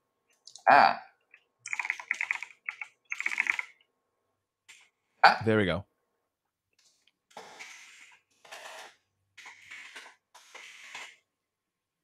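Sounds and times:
faint computer keyboard typing: 0:01.3 - 0:03.9.

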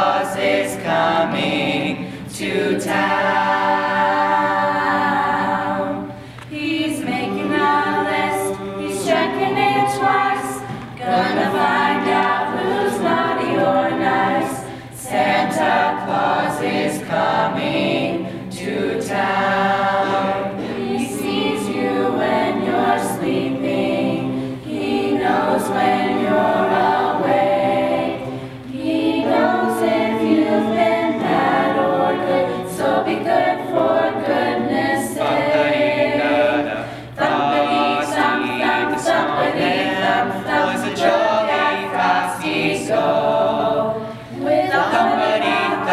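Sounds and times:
choir singing a cappella: 0:00.0 - 0:45.9.

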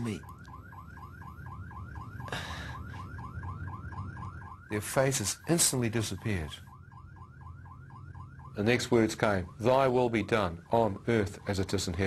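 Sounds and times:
electronic alarm warbling: 0:00.0 - 0:12.0.

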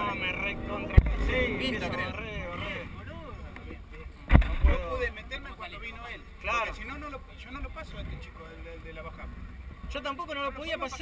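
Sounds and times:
low steady rumble: 0:00.0 - 0:10.0
people talking: 0:00.0 - 0:11.0.

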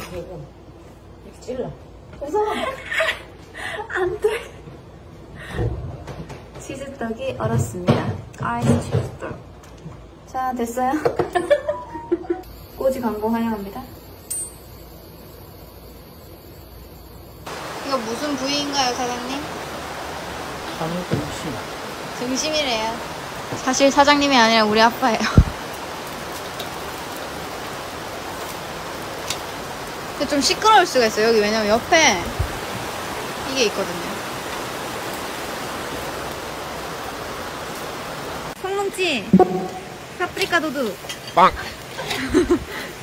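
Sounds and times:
faint steady hiss: 0:09.5 - 0:43.0
stream rushing over rocks: 0:17.5 - 0:38.6.

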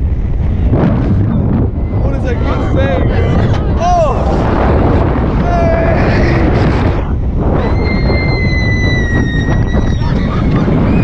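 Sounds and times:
wind buffeting microphone: 0:00.0 - 0:11.0
long high scream: 0:07.6 - 0:10.0.

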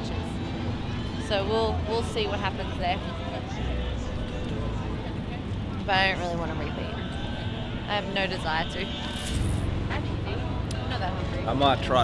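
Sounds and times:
faint music: 0:00.0 - 0:12.0
outdoor background noise: 0:00.0 - 0:12.0.

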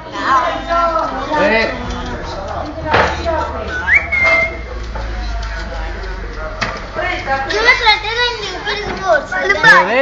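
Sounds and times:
parrot whistling: 0:03.7 - 0:04.7.

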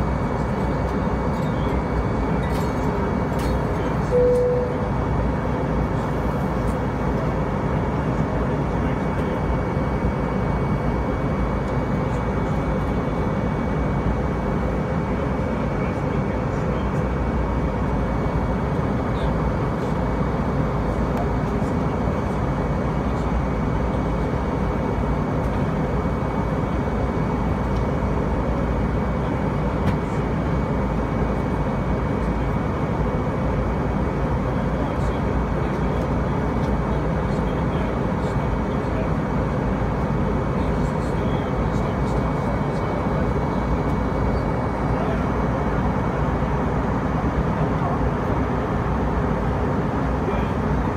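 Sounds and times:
airliner engines and airflow: 0:00.0 - 0:50.9
thin high whine: 0:04.0 - 0:05.0.

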